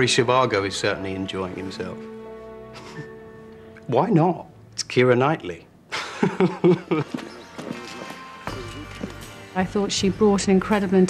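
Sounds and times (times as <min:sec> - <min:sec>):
faint background music: 0:00.0 - 0:11.0
short laugh: 0:02.8 - 0:03.2.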